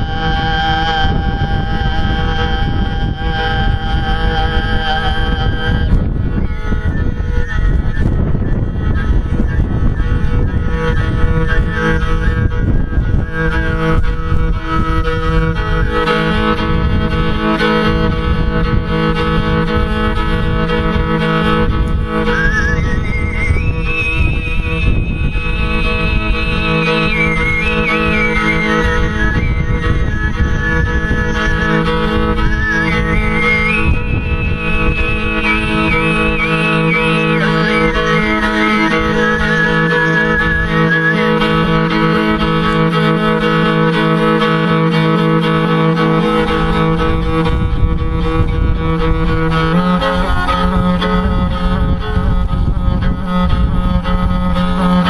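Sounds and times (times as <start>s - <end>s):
whistle-like overtone melody: 0.0s - 16.4s, 22.0s - 42.5s
bowed fiddle droning: 0.0s - 55.0s
throat singing drone: 0.0s - 55.0s.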